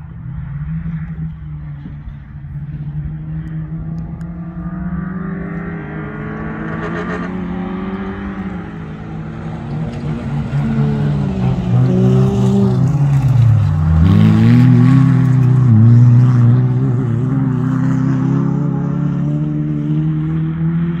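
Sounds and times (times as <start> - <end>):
race car engine accelerating: 0.1 - 21.0.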